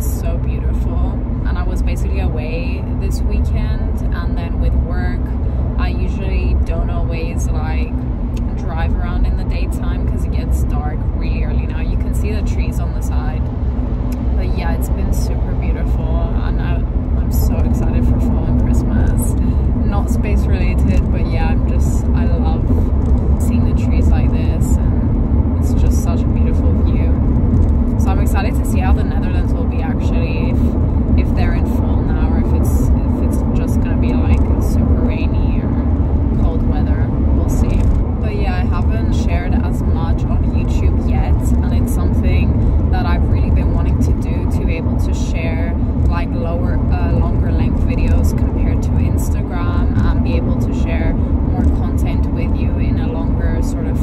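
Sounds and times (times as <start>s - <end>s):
car road and engine rumble: 0.0s - 54.0s.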